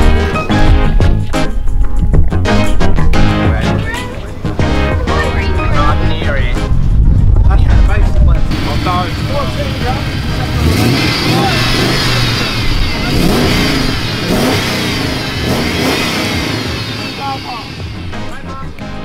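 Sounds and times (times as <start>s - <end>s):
crowd talking: 2.9s - 19.0s
car engine revving: 4.5s - 19.0s.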